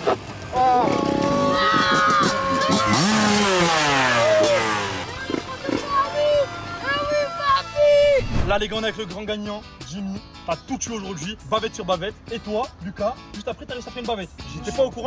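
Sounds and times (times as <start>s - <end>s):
motocross bike engine revving: 0.0s - 7.1s
music with sung vocals: 8.8s - 15.0s.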